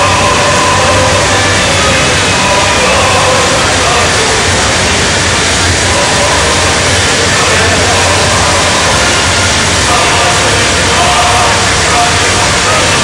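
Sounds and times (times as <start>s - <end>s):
armoured vehicles engine rumble: 0.0s - 13.0s
crowd noise: 0.0s - 13.0s.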